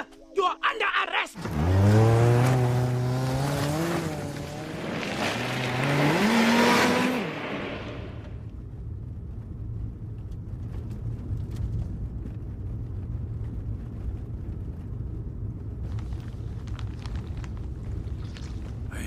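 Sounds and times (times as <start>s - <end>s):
car engine revving and accelerating: 1.4s - 8.4s
low steady rumble: 1.4s - 19.0s.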